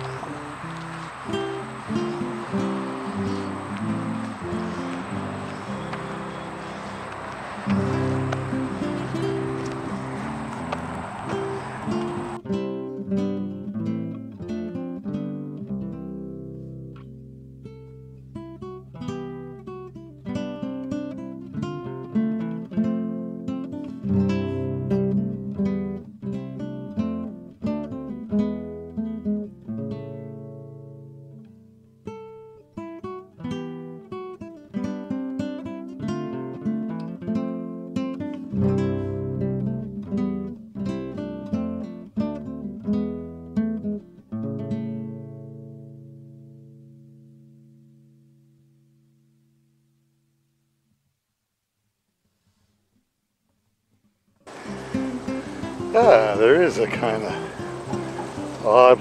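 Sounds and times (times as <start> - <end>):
acoustic guitar music: 0.0 - 50.7, 54.0 - 59.0.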